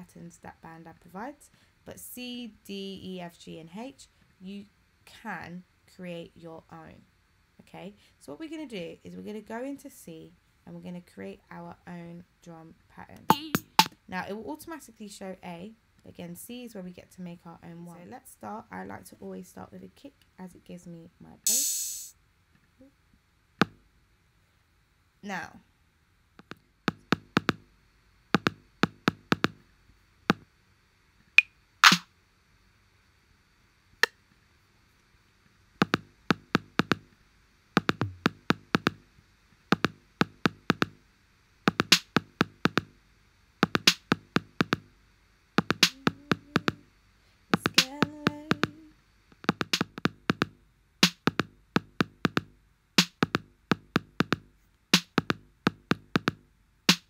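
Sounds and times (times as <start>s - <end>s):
drum machine pattern: 13.2s - 14.0s, 21.5s - 22.1s, 26.4s - 27.6s, 28.4s - 29.6s, 31.8s - 32.0s, 35.8s - 37.1s, 37.8s - 39.0s, 39.7s - 41.0s, 41.7s - 43.0s, 43.6s - 44.9s, 45.6s - 46.8s, 47.6s - 57.0s.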